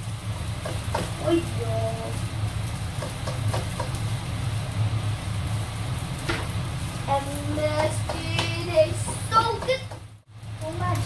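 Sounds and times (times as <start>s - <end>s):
low mechanical hum: 0.0s - 11.0s
spatula tapping wok: 0.4s - 1.2s, 2.8s - 4.1s, 7.6s - 10.2s.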